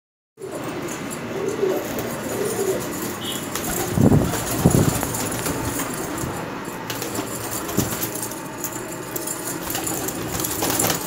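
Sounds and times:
pigeons cooing: 0.4 - 8.2.

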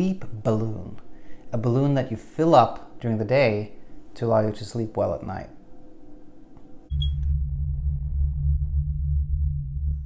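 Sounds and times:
low synthesized hum: 5.6 - 10.0.

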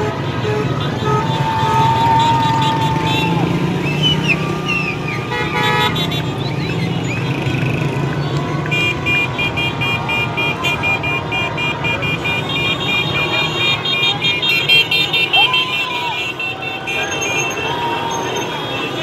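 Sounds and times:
car horns beeping rapidly: 0.0 - 4.2, 4.8 - 7.8, 8.7 - 19.0
traffic rumble: 0.0 - 19.0
people shouting: 0.8 - 6.0, 14.8 - 19.0.

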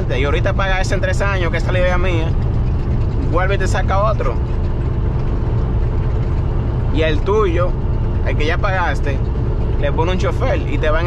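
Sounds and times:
truck engine and road rumble: 0.0 - 11.0.

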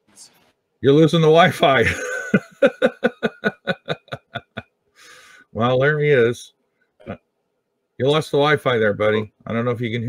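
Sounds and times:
man laughing: 1.6 - 4.6.

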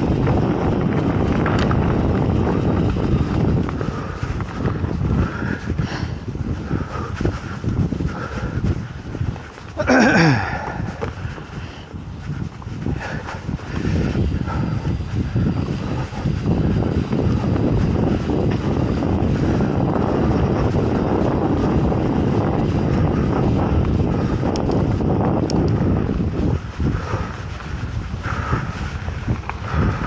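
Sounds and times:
tyre rumble on dirt trail: 0.0 - 30.0
wind buffeting microphone: 0.0 - 30.0.

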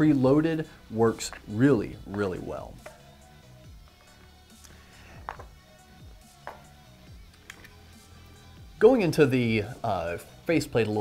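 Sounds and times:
quiet background music: 0.0 - 11.0
light knocks on glass table: 6.4 - 6.7.

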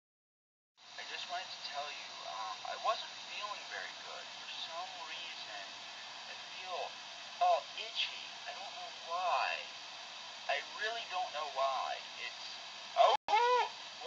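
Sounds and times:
speech through computer speaker: 1.0 - 9.7, 10.5 - 13.2.

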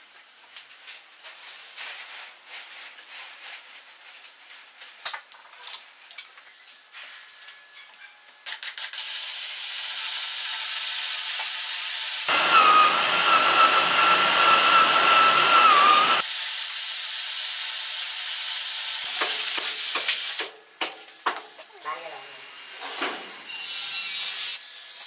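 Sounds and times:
cordless drill boring into wood: 8.8 - 20.4.

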